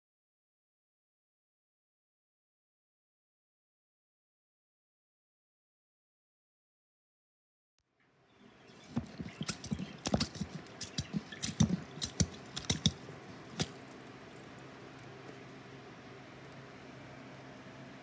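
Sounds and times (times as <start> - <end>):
faint steady hiss: 8.0 - 18.0
churn knocking and splashing: 8.9 - 13.8.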